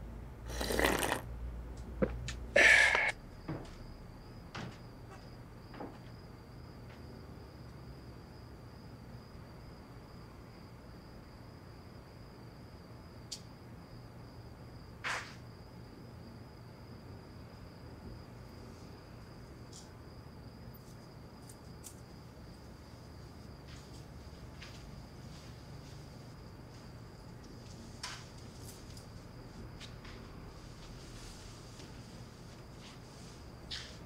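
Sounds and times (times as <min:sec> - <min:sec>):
crickets chirring: 0:00.0 - 0:34.0
high hiss: 0:02.6 - 0:03.2.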